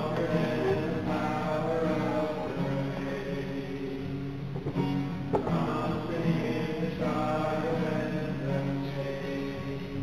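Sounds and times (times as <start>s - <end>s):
strummed acoustic guitar: 0.0s - 10.0s
voices singing together: 0.0s - 10.0s.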